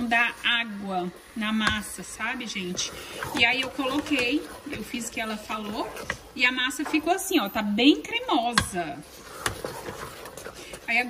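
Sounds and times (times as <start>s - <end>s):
wooden spoon scraping a pot: 0.0s - 11.0s.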